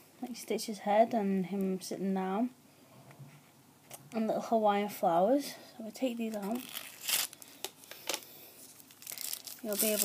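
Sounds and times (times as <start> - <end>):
plaster wrappers rustling: 6.2 - 10.0.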